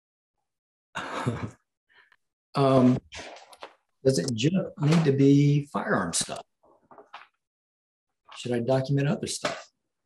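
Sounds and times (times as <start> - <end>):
man laughing breathily: 1.0 - 1.6.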